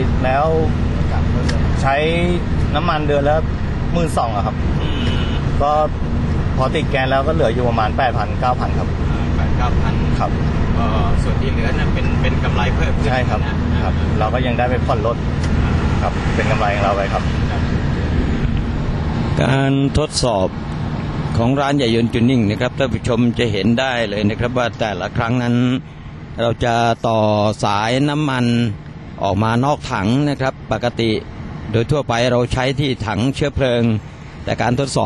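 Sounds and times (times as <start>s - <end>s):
man speaking: 0.0s - 6.0s, 6.6s - 17.8s, 19.3s - 20.6s, 21.3s - 35.0s
engine and road rumble in cabin: 0.0s - 35.0s.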